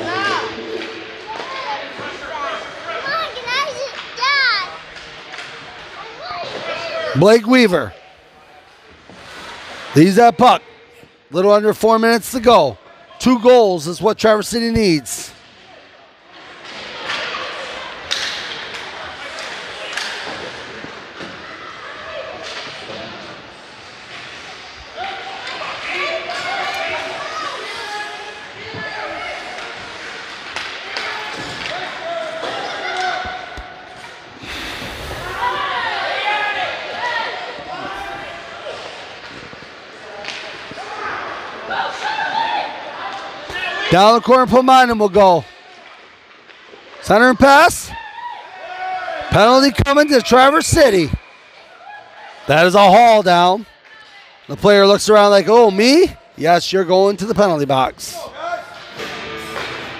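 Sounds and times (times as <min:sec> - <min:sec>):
voices echoing in arena: 0:00.0 - 0:59.9.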